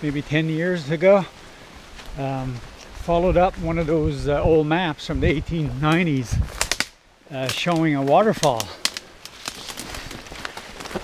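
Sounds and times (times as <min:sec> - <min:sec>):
footsteps through wet undergrowth: 0:00.0 - 0:11.0.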